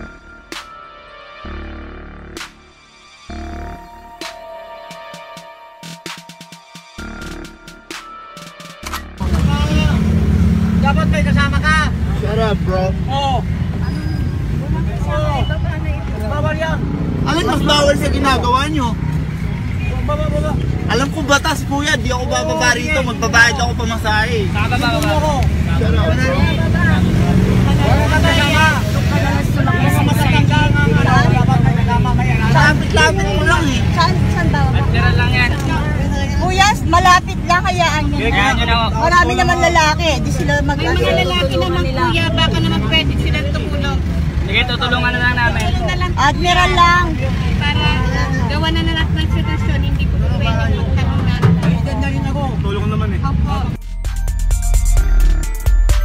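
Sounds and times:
vehicle engine and road rumble: 8.9 - 53.8
people talking over one another: 9.2 - 53.8
voices: 9.2 - 53.8.

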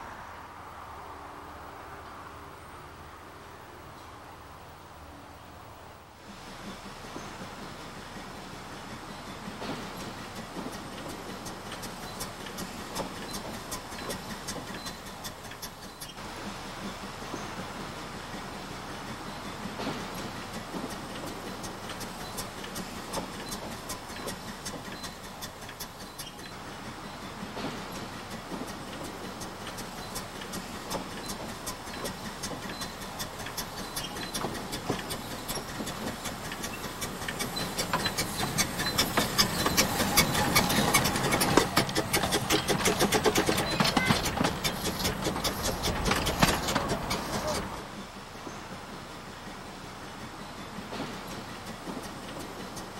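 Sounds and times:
steam locomotive running: 5.4 - 52.9
rapid wheel clicks: 29.4 - 47.8.

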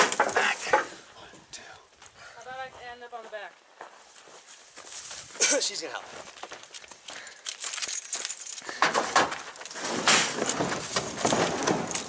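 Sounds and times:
footsteps on dirt and gravel: 1.9 - 12.0.

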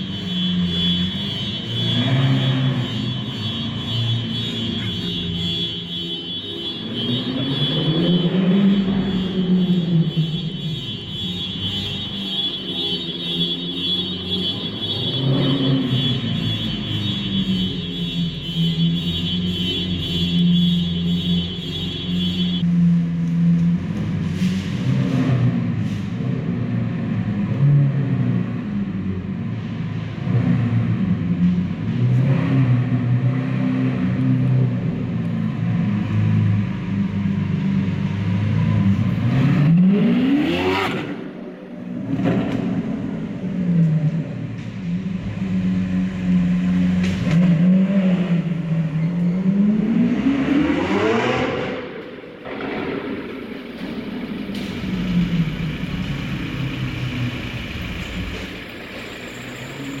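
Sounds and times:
car engine revving: 38.4 - 58.8.

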